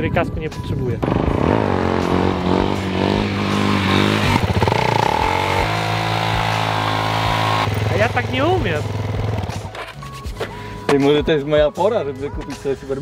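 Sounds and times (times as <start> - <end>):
motorcycle engine revving: 1.0 - 9.8.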